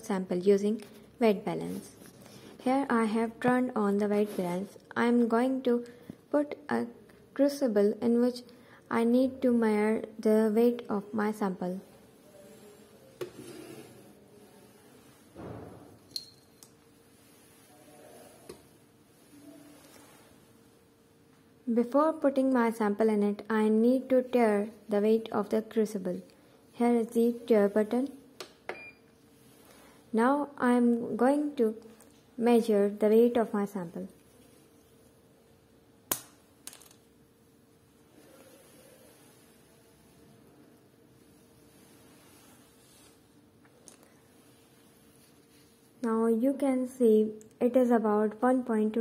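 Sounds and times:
faint steady hum: 0.0 - 49.0
glass door sliding: 13.4 - 14.2.

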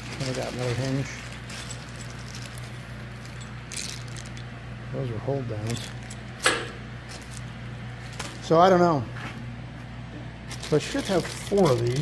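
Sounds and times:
plastic bag crinkling: 0.0 - 4.5, 5.6 - 6.2, 7.1 - 8.6, 10.5 - 12.0
steady low hum: 0.0 - 12.0.

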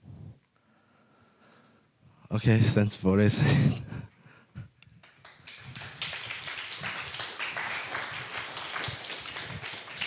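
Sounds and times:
audience applauding: 5.0 - 10.0.

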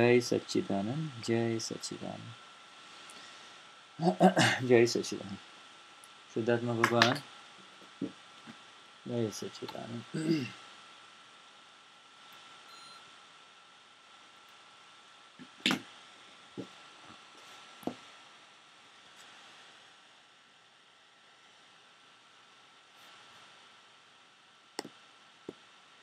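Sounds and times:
faint room hiss: 0.0 - 26.0.

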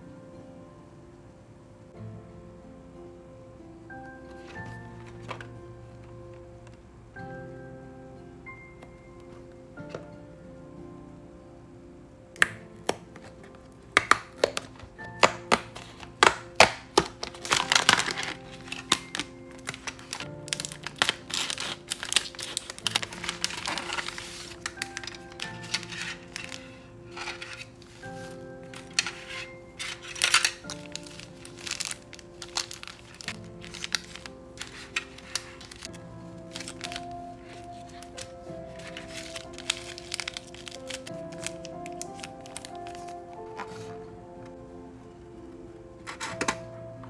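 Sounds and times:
soft background music: 0.0 - 47.0
plastic wrapping crinkling: 12.4 - 44.6
sharp crackles and clicks: 14.0 - 37.0.

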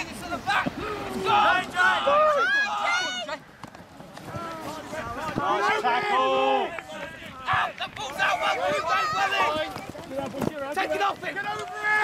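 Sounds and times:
men shouting: 0.4 - 3.2, 7.3 - 9.7.

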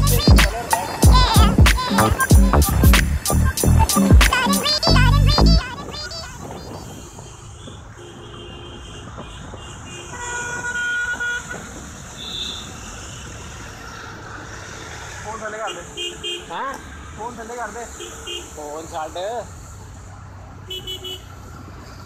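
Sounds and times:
wind noise: 0.0 - 8.0
vehicle horn: 0.0 - 13.3, 15.6 - 16.7, 17.9 - 18.6, 20.7 - 21.4
traffic noise: 0.0 - 22.0.

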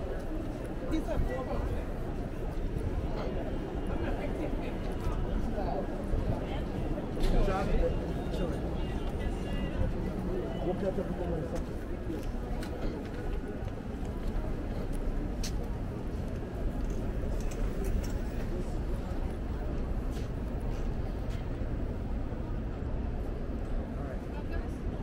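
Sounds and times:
indistinct chatter of many people: 0.0 - 25.0.

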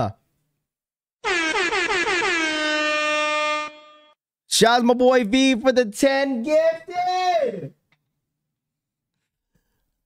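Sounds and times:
air horn blast: 1.2 - 4.2.

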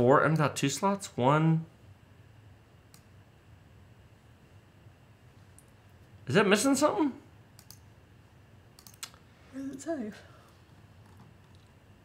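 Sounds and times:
computer mouse clicking: 7.6 - 7.8, 8.8 - 9.2.

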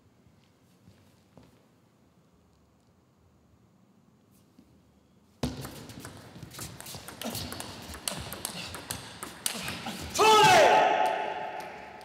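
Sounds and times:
table tennis ball clicks: 5.5 - 10.0.

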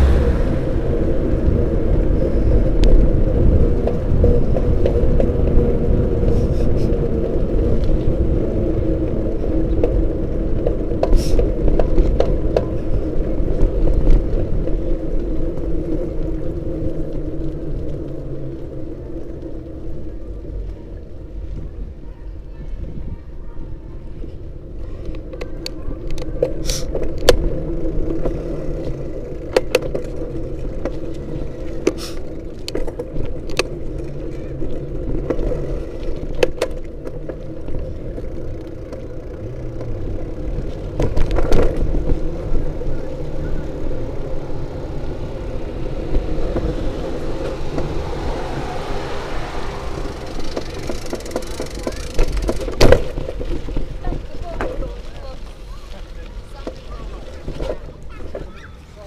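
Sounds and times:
camera rolling rumble: 0.1 - 58.7.

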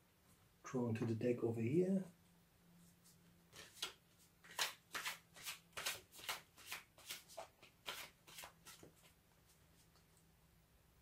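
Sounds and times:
cards being shuffled: 3.5 - 9.2.

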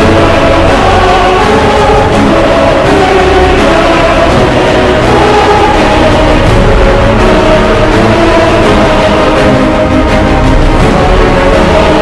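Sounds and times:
soundtrack music with choir: 0.0 - 12.0.

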